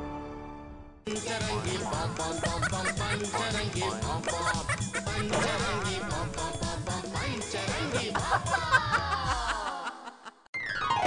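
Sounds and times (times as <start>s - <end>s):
comedy theme music: 0.0s - 11.0s.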